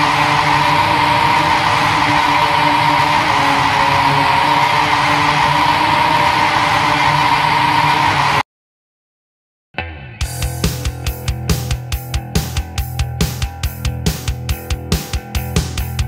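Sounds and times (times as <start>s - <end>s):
symphonic black metal music: 9.8s - 16.0s.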